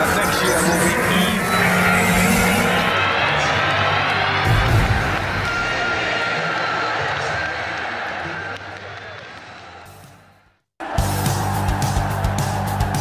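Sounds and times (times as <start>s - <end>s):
loud intro music: 10.8s - 13.0s.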